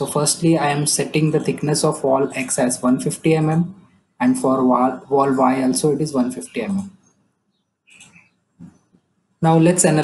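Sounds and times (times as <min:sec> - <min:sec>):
faint bird chirp: 0:06.4 - 0:09.0.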